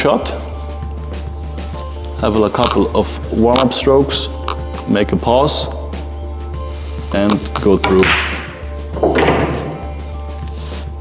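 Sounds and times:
background music: 0.0 - 11.0
pool ball dropping into pocket: 7.7 - 9.9.

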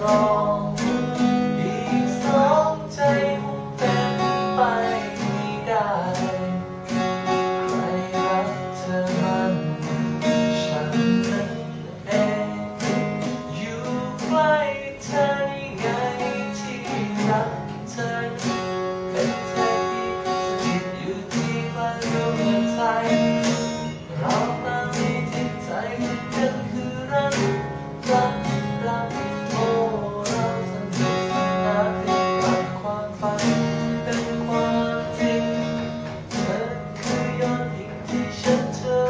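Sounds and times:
acoustic guitars strumming: 0.0 - 39.0
man singing a pop ballad: 0.0 - 39.0.

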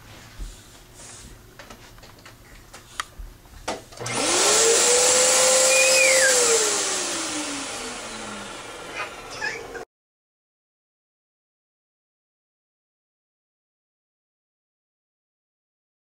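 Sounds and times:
electric fan motor spinning: 3.9 - 9.8.

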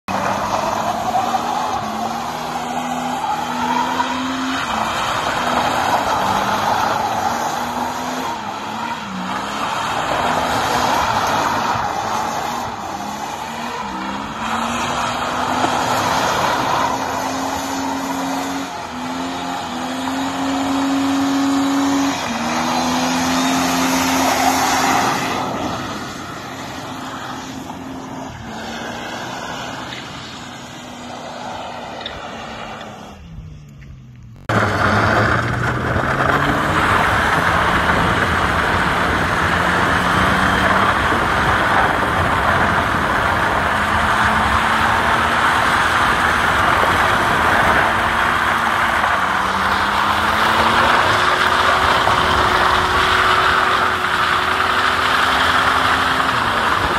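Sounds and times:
car engine revving: 0.0 - 56.9
tyre screech: 0.1 - 33.4.

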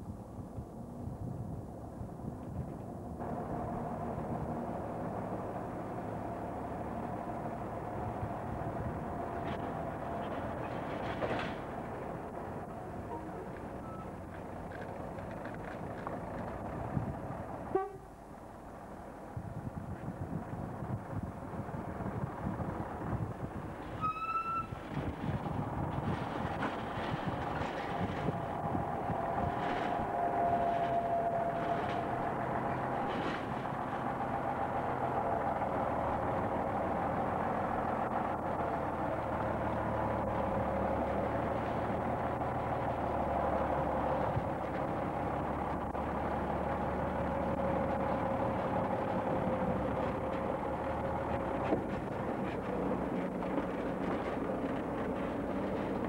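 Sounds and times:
truck diesel engine running: 0.7 - 24.0, 24.6 - 56.0.

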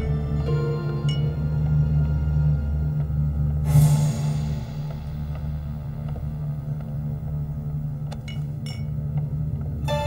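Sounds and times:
suspenseful drone music: 0.0 - 10.0.

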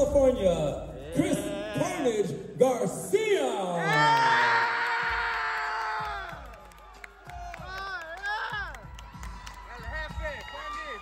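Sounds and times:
entrance music beat: 5.0 - 11.0.

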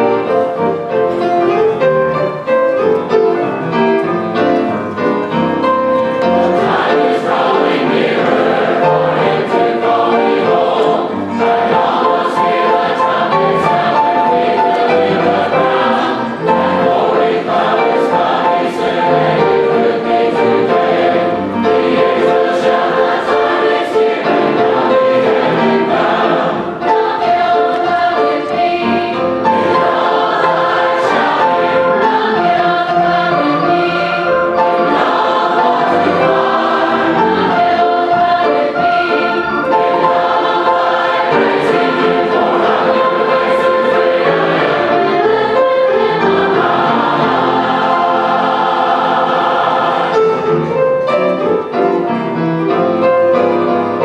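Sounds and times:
piano: 0.0 - 54.0
choir singing gospel: 4.4 - 51.8.

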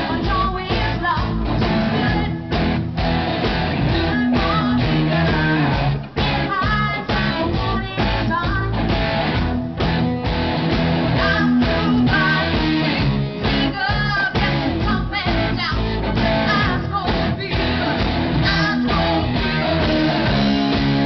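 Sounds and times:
woman singing into a microphone: 0.0 - 2.6, 3.9 - 8.9, 11.1 - 12.8, 13.4 - 20.5
electric guitar: 0.0 - 21.0
live rock band: 0.0 - 21.0.

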